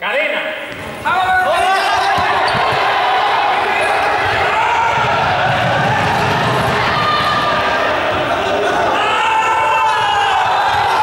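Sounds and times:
shoes squeaking: 0.7 - 4.4
group of people yelling: 1.1 - 11.0.

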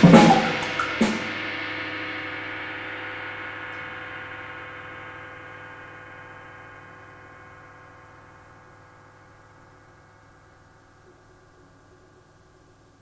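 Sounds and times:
cymbals ringing: 0.0 - 10.6.

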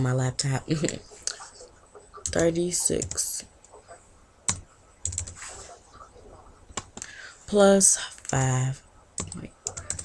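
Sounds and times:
laptop keys clicking: 9.2 - 10.0.

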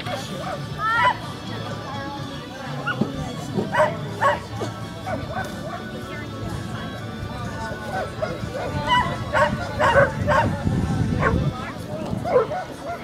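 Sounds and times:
background music: 0.0 - 13.0
voices: 0.0 - 13.0
dog barking: 3.7 - 5.8, 8.0 - 10.5, 12.2 - 13.0.

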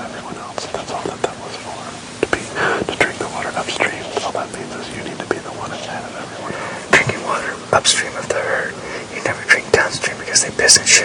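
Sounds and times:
men whispering: 0.0 - 11.0.

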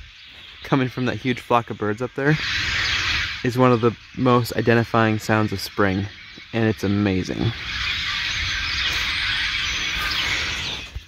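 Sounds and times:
flock of birds chirping: 0.0 - 11.0.

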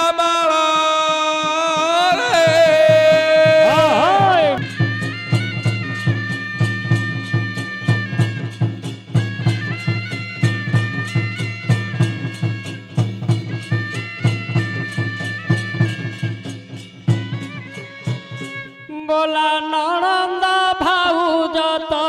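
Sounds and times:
steady drum beats: 0.0 - 19.0
shawm playing wavering melody: 1.6 - 19.2.

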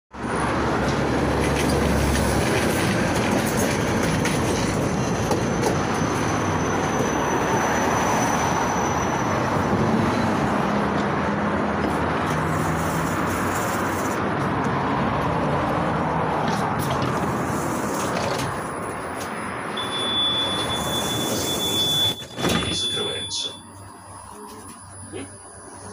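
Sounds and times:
tram wheels rumbling on rails: 0.2 - 19.8.

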